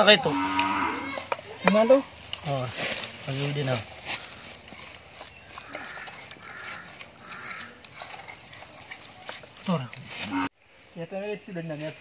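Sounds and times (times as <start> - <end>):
high-pitched insect drone: 0.0 - 2.6, 3.2 - 12.0.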